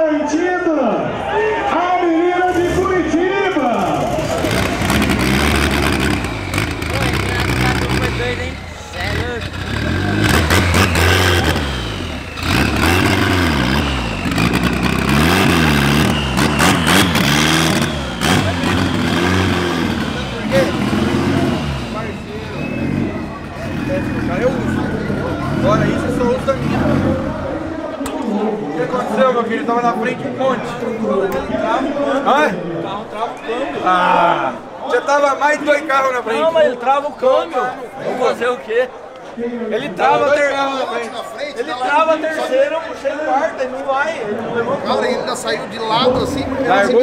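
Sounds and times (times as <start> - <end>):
voices: 0.0 - 47.0
turbocharged car engine revving: 2.5 - 28.0.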